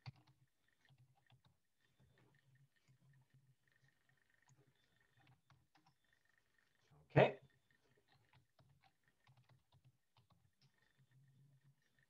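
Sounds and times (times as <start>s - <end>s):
computer keyboard typing: 0.0s - 1.6s, 7.8s - 12.0s.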